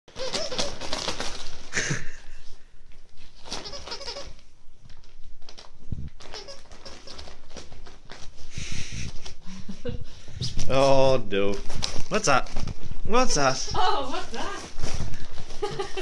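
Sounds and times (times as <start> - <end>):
wrapping paper crinkling and tearing: 0.1 - 2.4, 3.1 - 9.4, 10.6 - 16.0.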